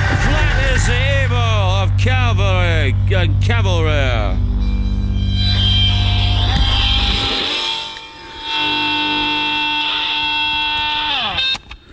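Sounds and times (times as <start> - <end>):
held high note over guitar: 0.0 - 10.7
low pulsing bass drone: 0.0 - 10.9.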